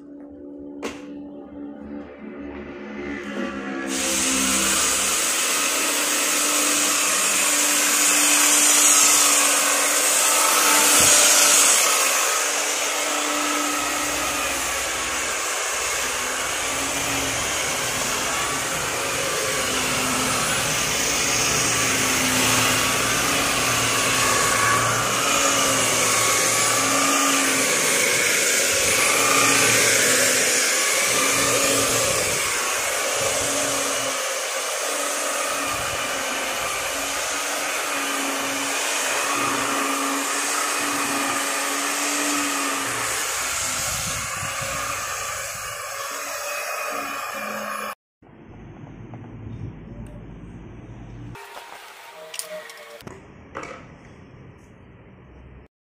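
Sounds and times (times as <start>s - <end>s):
belt sander motor whine: 0.0s - 48.0s.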